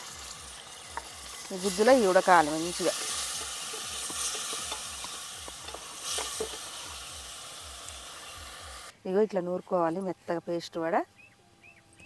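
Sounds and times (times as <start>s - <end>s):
onions sizzling in oil: 0.0s - 8.9s
wooden spatula stirring in pot: 0.8s - 6.9s.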